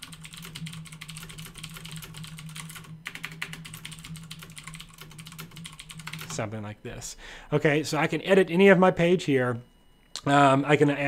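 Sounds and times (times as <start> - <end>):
fast keyboard typing: 0.0 - 6.5
steady low hum: 0.0 - 11.0.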